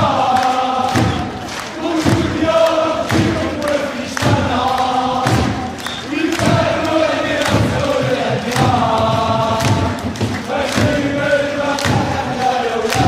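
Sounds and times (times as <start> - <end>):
crowd chanting in unison: 0.0 - 13.0
sharp thuds on the beat: 0.0 - 13.0.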